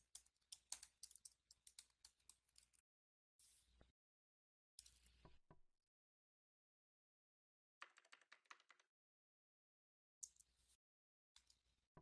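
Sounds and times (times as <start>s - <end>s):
typing on keyboard: 0.0s - 2.4s, 7.8s - 8.9s.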